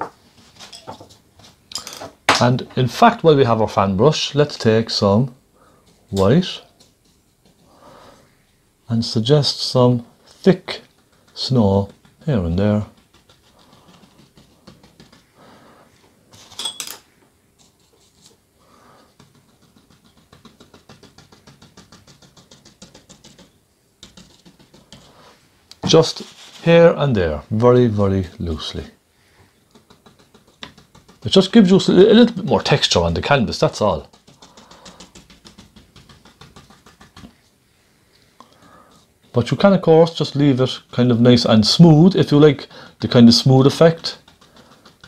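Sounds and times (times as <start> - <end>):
brush strokes on canvas: 4.2 - 16.4, 17.1 - 27.5, 28.2 - 42.4, 43.1 - 45.0
brush tapping on canvas: 10.7 - 15.4, 19.0 - 25.2, 29.6 - 37.5, 43.1 - 45.0.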